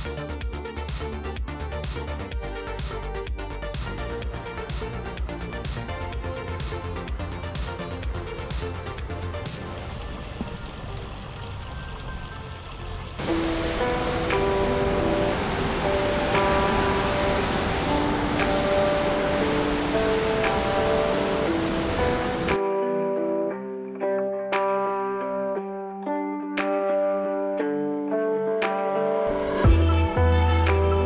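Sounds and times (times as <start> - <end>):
picked melody music: 0.0 - 31.0
water rushing over spillway: 12.5 - 22.6.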